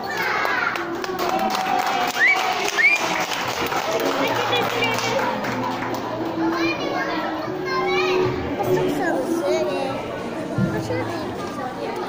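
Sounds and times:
children talking and calling out: 0:00.0 - 0:01.3, 0:03.9 - 0:12.0.

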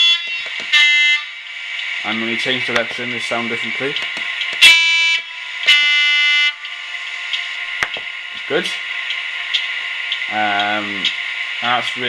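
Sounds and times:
model locomotive horn blasts: 0:00.0 - 0:01.5, 0:04.6 - 0:06.7
steady high hum: 0:00.0 - 0:12.0.

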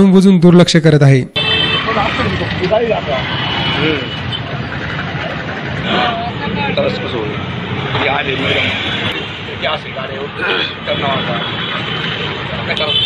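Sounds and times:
motorcycles passing slowly: 0:01.8 - 0:12.8
people's voices: 0:01.8 - 0:13.0.

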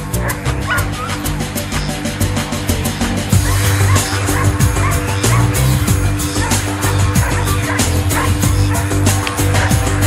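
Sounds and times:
background music with beat: 0:00.0 - 0:10.0
dog yipping: 0:00.2 - 0:01.2, 0:03.4 - 0:05.6, 0:06.4 - 0:08.9.

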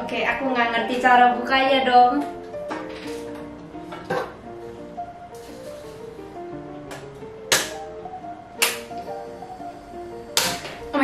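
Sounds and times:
background music: 0:00.0 - 0:11.0
gas burner lighting: 0:02.6 - 0:11.0
gas stove igniter clicks: 0:08.6 - 0:09.0, 0:10.4 - 0:10.8.

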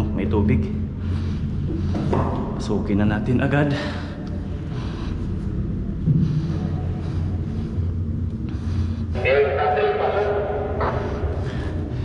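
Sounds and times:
low machinery hum: 0:00.0 - 0:12.0.

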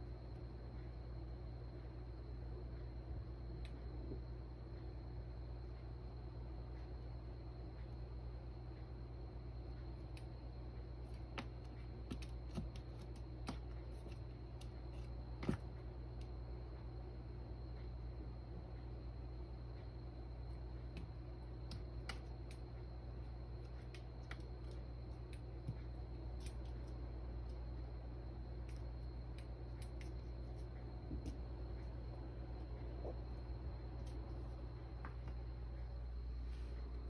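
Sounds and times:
low steady hum: 0:00.0 - 0:37.0.

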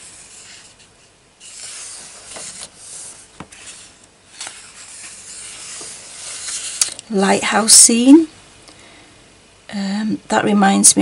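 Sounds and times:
paper page turning: 0:00.1 - 0:07.1.

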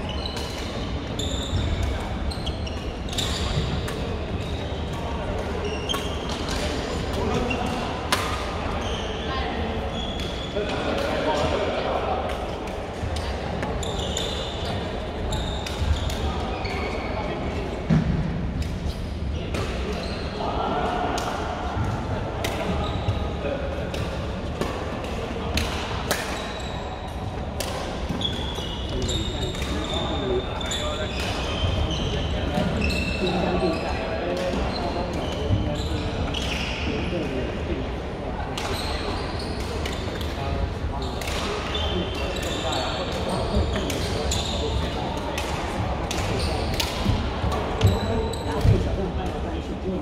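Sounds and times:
background chatter: 0:00.0 - 0:50.0
rackets striking shuttlecock: 0:45.4 - 0:47.2.

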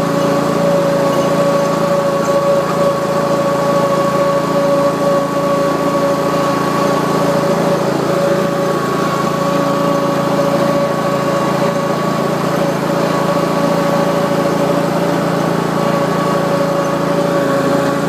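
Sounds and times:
mower engine with high whine: 0:00.0 - 0:18.0.

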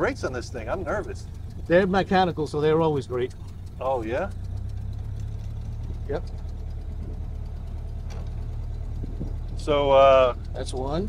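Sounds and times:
car engine running at low revs: 0:00.0 - 0:11.0.

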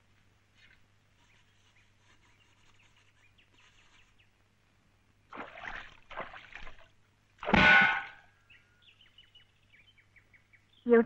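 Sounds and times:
bird chirping: 0:01.2 - 0:04.4, 0:08.3 - 0:11.0
metal pot clanging: 0:07.5 - 0:08.2.

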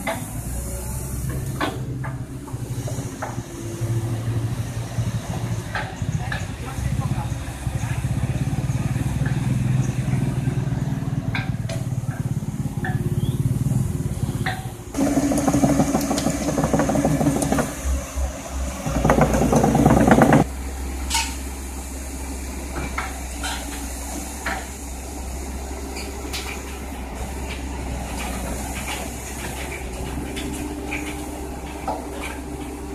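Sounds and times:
diesel engine running: 0:00.0 - 0:32.9
steel tracks rattling on paving: 0:14.2 - 0:20.5, 0:26.0 - 0:32.9.

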